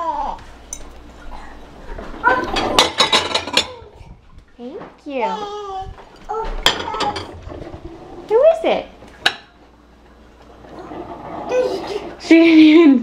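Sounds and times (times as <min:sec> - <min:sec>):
dishes clinking: 0:00.7 - 0:01.0, 0:02.2 - 0:03.8, 0:06.0 - 0:07.7, 0:09.2 - 0:09.6.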